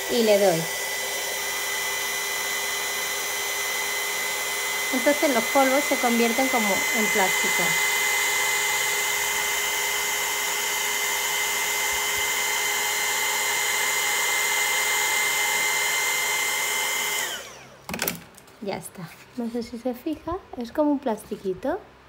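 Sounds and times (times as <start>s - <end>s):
heat gun blowing with high whine: 0.0s - 17.9s.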